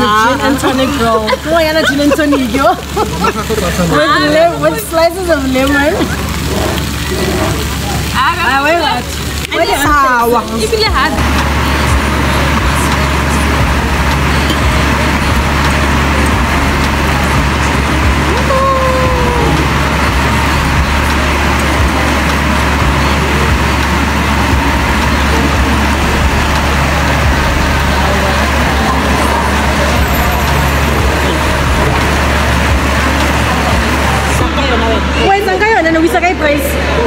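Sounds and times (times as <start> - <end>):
heavy rain pouring: 0.0 - 37.0.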